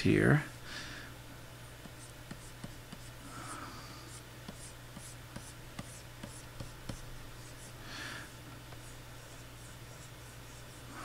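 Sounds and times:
stylus scratching and tapping: 0:01.8 - 0:03.2, 0:04.1 - 0:07.8, 0:08.7 - 0:10.9.

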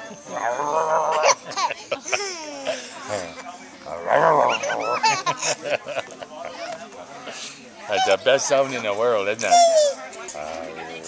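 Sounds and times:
baby laughing and squealing: 0:09.5 - 0:10.0.

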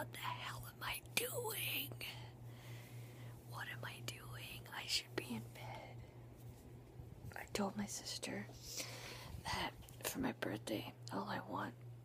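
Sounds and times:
person whispering: 0:00.0 - 0:02.3, 0:03.4 - 0:06.0, 0:07.3 - 0:08.7, 0:09.4 - 0:11.8
faint low hum: 0:00.0 - 0:12.0.

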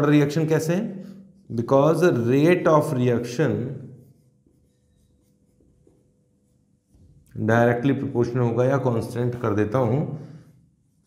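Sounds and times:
marker scratching on whiteboard: 0:03.3 - 0:07.5, 0:10.3 - 0:11.0.

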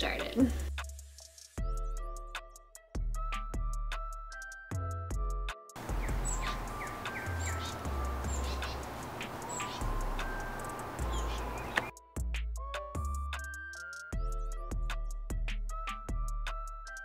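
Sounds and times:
light background music: 0:00.0 - 0:17.0
steady ambient hiss: 0:05.8 - 0:11.9
small birds chirping: 0:05.8 - 0:12.0.

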